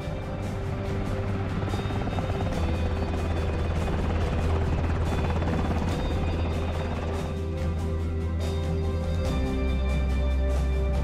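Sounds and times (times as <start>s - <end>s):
film score music: 0.0s - 11.0s
helicopter rotors beating: 0.0s - 11.0s.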